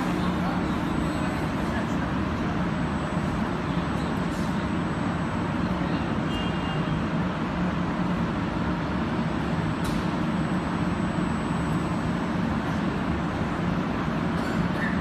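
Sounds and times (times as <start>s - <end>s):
industrial machinery drone: 0.0s - 15.0s.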